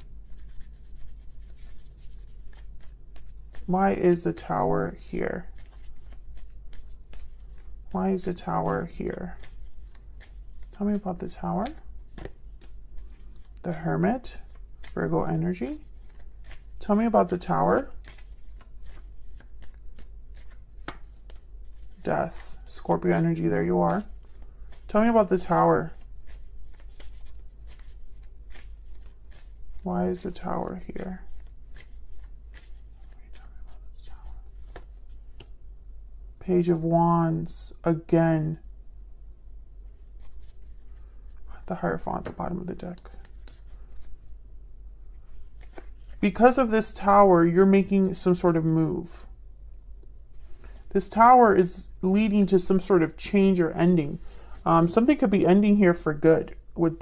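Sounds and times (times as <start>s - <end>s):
cards being shuffled: 0.0s - 35.6s, 39.8s - 44.3s, 45.1s - 47.2s
low steady hum: 0.0s - 57.0s.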